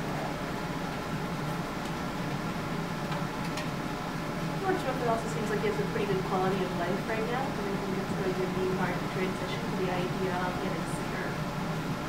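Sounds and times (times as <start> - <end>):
ventilation system hum: 0.0 - 12.0.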